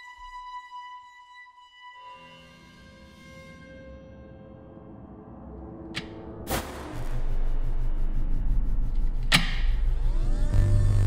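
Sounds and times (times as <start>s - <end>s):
low throbbing hum: 6.5s - 11.0s.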